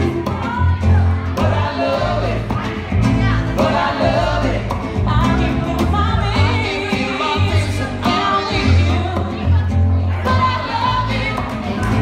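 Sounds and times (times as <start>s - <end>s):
acoustic guitar: 0.0s - 12.0s
bass guitar: 0.0s - 12.0s
woman singing: 0.0s - 12.0s.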